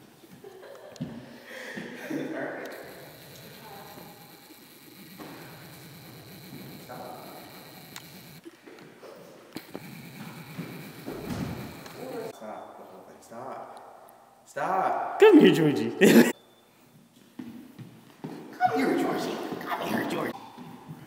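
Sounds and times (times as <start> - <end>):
indistinct voices: 2.6 - 8.4, 9.6 - 13.1
sharp knocks and thumps: 9.6 - 12.1.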